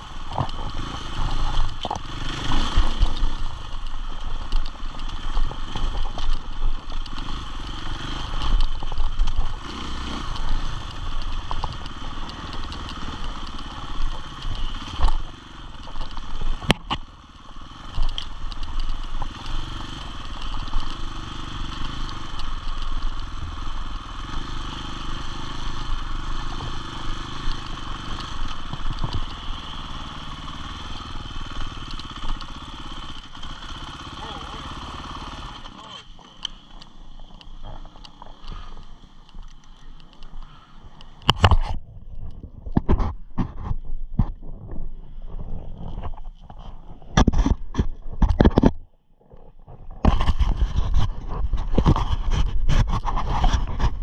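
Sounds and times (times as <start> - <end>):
motorcycle engine revving: 0.0 - 42.8.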